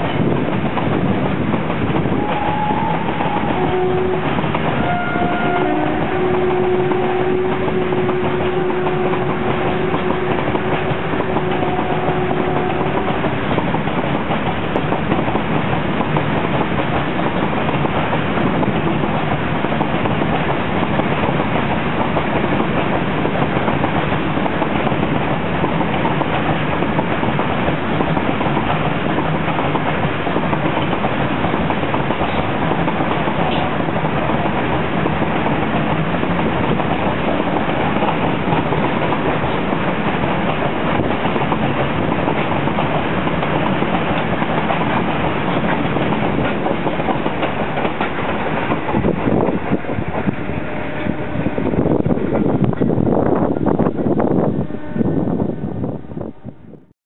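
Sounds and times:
freight train wheels on rails: 0:00.0 - 0:56.9.

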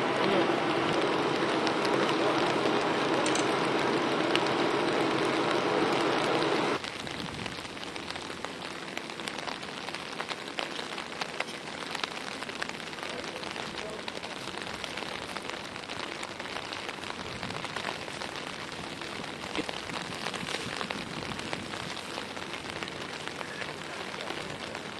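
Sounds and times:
raindrops ticking close by: 0:00.0 - 0:24.9
steady rain: 0:00.0 - 0:24.9.

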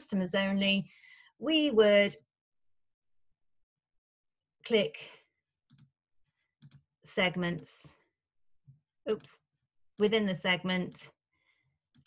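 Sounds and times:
computer mouse clicks: 0:05.7 - 0:05.9, 0:06.6 - 0:06.9, 0:09.1 - 0:09.4.

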